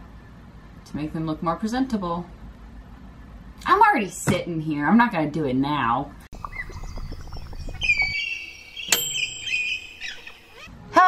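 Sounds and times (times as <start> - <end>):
birds chirping and twittering: 6.4 - 10.7.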